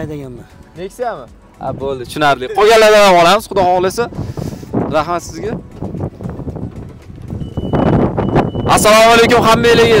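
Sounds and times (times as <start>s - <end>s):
wind rumbling on microphone: 2.8s - 10.0s.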